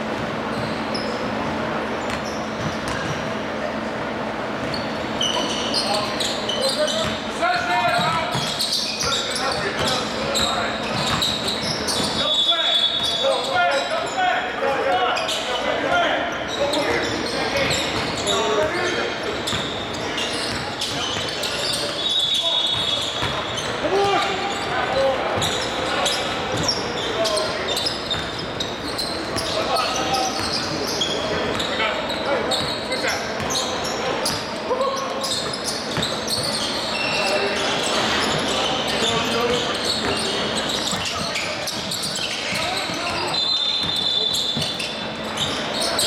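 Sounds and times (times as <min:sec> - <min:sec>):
sneakers squeaking: 0:00.0 - 0:46.0.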